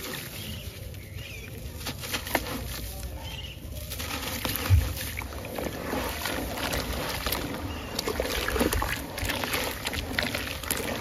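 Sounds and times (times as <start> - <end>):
wet slurry swishing: 0.0 - 1.0, 3.6 - 11.0
gritty crunching and crackling: 0.0 - 11.0.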